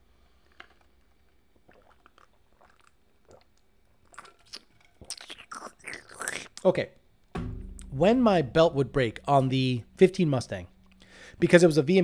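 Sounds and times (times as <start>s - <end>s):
man sipping and swallowing: 1.6s - 6.6s, 10.7s - 11.4s.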